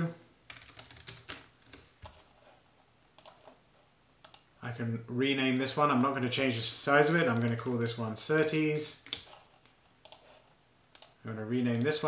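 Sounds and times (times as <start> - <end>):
keyboard typing: 0.5 - 2.3, 3.2 - 3.6, 4.2 - 4.5, 8.4 - 12.0.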